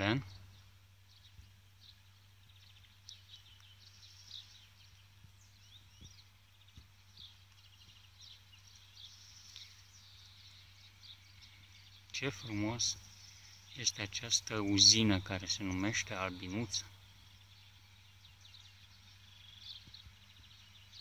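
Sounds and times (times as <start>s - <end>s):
small birds chirping: 0.0s - 21.0s
steady low hum: 0.0s - 21.0s.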